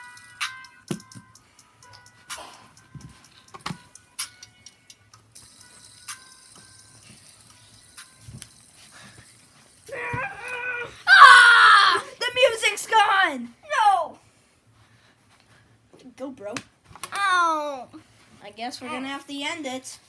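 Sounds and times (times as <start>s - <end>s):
music from a speaker: 0.0s - 9.9s
young voice squealing: 9.9s - 12.2s.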